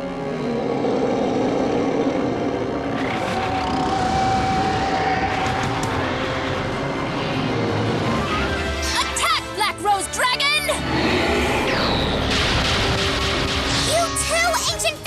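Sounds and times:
dramatic soundtrack music: 0:00.0 - 0:15.0.

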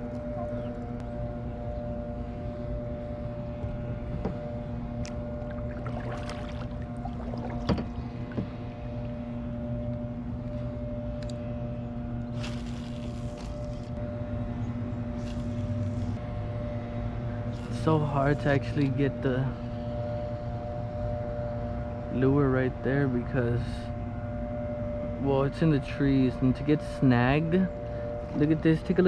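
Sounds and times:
steady mechanical hum: 0:00.0 - 0:29.0.

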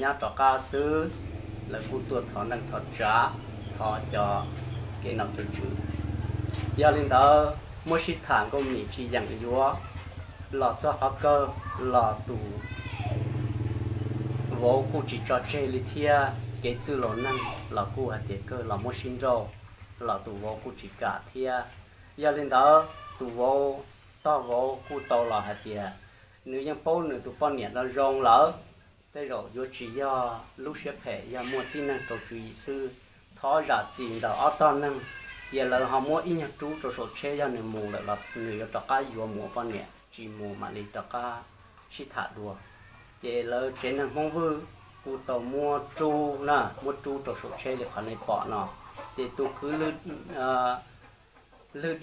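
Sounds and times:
man narrating: 0:00.0 - 0:09.9, 0:10.5 - 0:12.7, 0:14.4 - 0:28.6, 0:29.2 - 0:42.6, 0:43.2 - 0:50.9
man talking: 0:00.0 - 0:13.3, 0:14.2 - 0:50.9, 0:51.7 - 0:52.0
motor engine running: 0:00.8 - 0:19.2.

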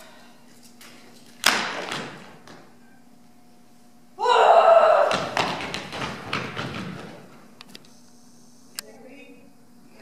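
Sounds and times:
running footsteps on stage floor: 0:05.1 - 0:07.5.

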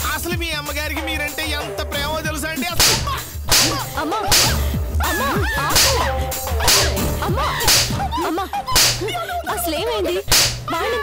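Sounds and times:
whip-like whoosh hits: 0:02.8 - 0:04.6, 0:05.7 - 0:07.1, 0:07.7 - 0:08.0, 0:10.3 - 0:10.6.

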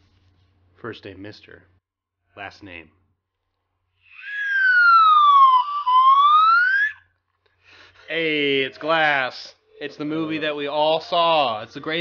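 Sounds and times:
person whistling gliding note: 0:04.1 - 0:07.1.

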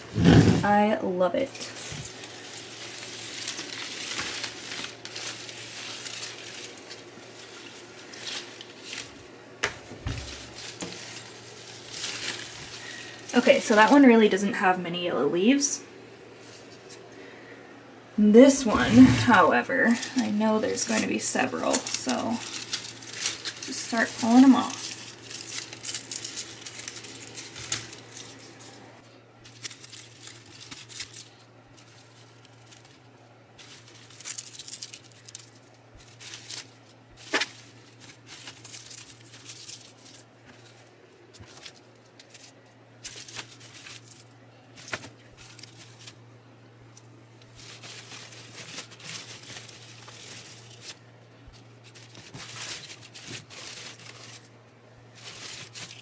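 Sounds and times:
leaves rustling and tearing: 0:00.0 - 0:17.5, 0:18.5 - 0:56.0
steady low hum: 0:00.0 - 0:56.0
stems snapping: 0:01.7 - 0:14.0, 0:19.9 - 0:28.8, 0:29.4 - 0:33.0, 0:33.6 - 0:46.2.

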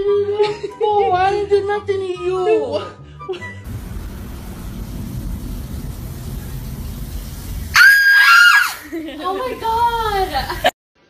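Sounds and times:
low background rumble: 0:03.7 - 0:10.7
woman screaming: 0:07.8 - 0:08.9.

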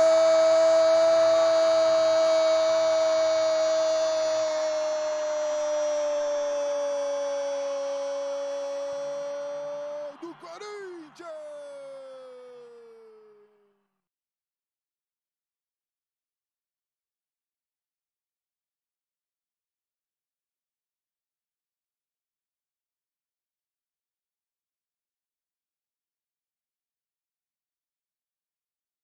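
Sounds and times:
man shouting long goal cry: 0:00.0 - 0:13.6.

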